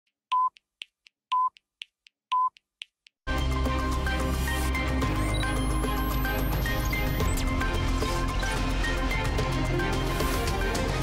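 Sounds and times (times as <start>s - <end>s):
news theme music: 3.3s - 11.0s
time-signal beeps: 5.2s - 7.3s.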